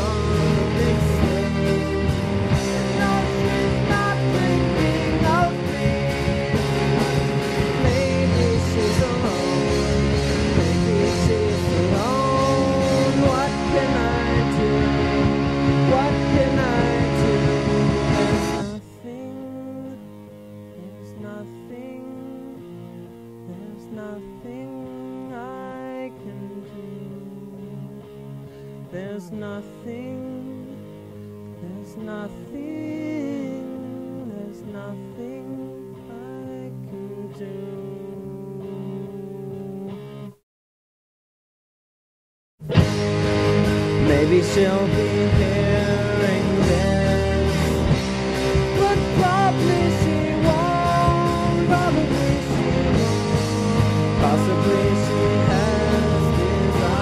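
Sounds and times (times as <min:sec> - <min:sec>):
full-band rock music: 0:00.0 - 0:21.0, 0:42.6 - 0:57.0
melodic guitar with bent notes: 0:00.0 - 0:40.4, 0:42.6 - 0:57.0.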